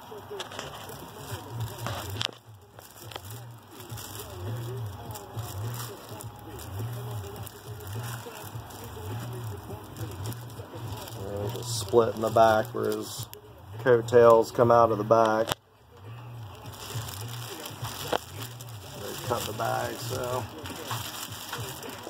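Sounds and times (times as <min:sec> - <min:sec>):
faint voice murmuring: 0:00.0 - 0:22.0
packaging rustling and crinkling: 0:00.0 - 0:22.0.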